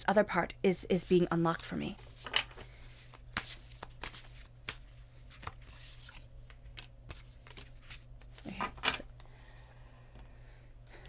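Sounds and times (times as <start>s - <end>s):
cards being shuffled: 1.6s - 9.3s.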